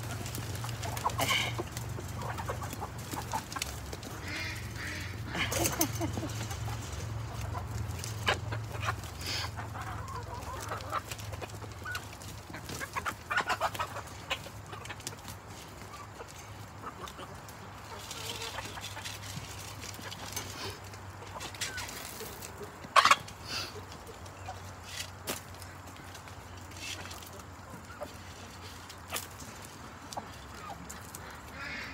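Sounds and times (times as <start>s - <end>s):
hens clucking: 0.0s - 31.9s.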